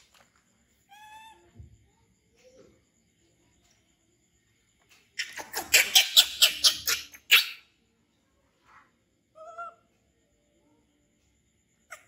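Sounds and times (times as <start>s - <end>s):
baby monkey shrieking: 5.2s - 7.7s.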